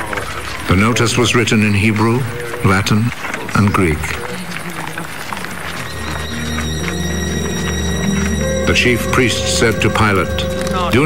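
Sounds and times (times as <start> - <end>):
background music: 5.8 - 11.0.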